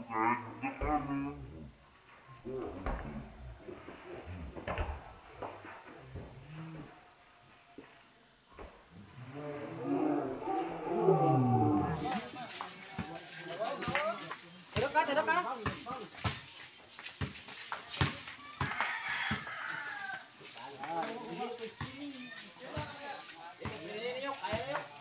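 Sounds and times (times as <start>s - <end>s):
people shouting and calling out: 10.6s - 16.7s, 17.9s - 25.0s
basketball bouncing on concrete: 12.0s - 25.0s.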